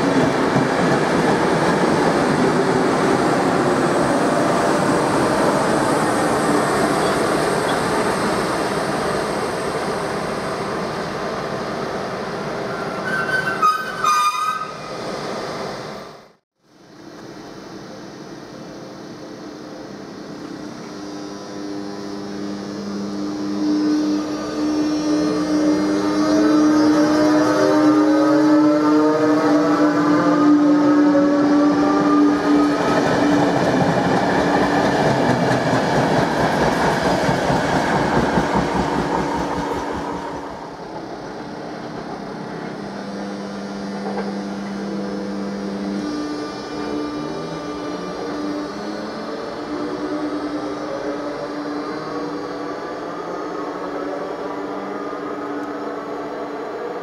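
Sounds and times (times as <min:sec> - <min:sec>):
train wheels on rails: 0:00.0 - 0:16.2, 0:22.5 - 0:57.0
electric locomotive traction whine: 0:00.0 - 0:57.0.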